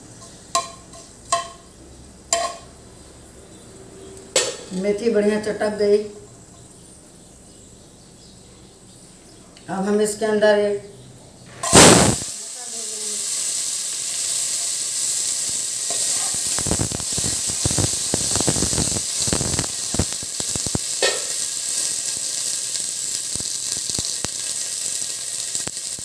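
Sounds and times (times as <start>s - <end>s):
peas sizzling in oil: 0.0s - 3.0s, 11.5s - 26.0s.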